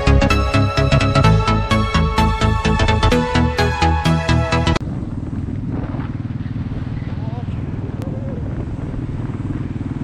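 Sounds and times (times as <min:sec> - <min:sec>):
motorcycle engine running: 0:04.8 - 0:10.0.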